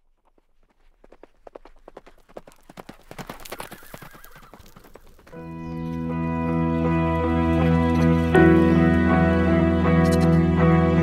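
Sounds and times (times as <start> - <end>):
horse hooves galloping: 0.0 - 8.7
horse whinnying: 3.6 - 4.8.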